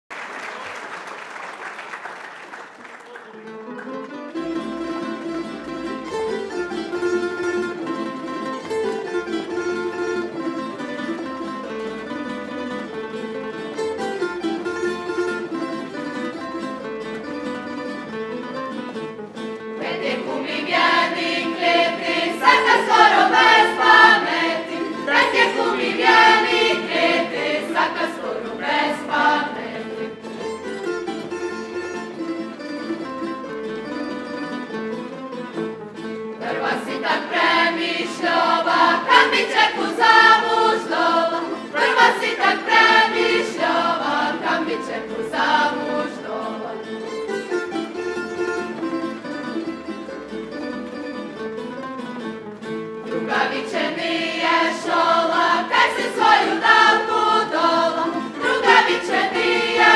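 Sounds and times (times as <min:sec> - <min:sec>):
tamburica band playing: 0:03.5 - 0:59.9
group singing folk round: 0:19.7 - 0:30.6, 0:36.4 - 0:47.2, 0:53.0 - 0:59.9.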